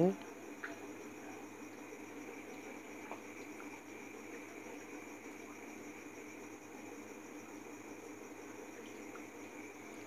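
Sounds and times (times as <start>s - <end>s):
microphone hiss and hum: 0.0s - 10.0s.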